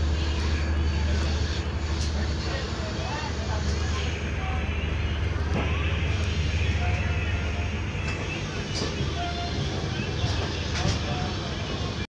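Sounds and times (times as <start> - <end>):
train rumbling on tracks: 0.0 - 12.0.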